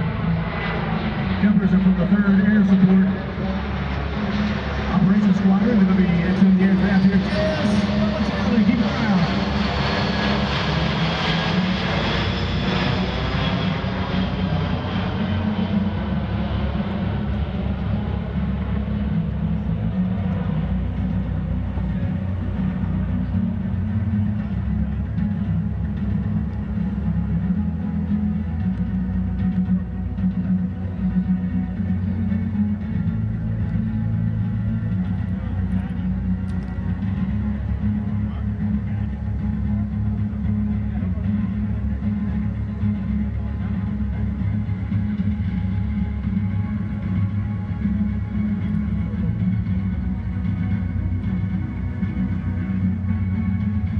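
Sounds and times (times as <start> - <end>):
jet passing overhead: 0.0 - 22.8
background music: 0.0 - 53.9.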